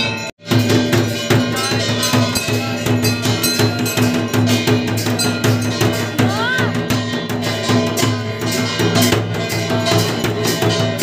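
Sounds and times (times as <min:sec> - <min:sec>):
drum beating fast rhythm: 0:00.0 - 0:11.0
metal bell clanging: 0:00.0 - 0:11.0.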